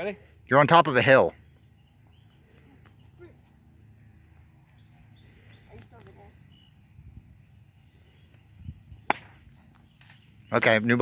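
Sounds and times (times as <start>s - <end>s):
faint bird chirps: 1.3s - 8.8s
golf club hitting ball and turf: 9.0s - 10.2s.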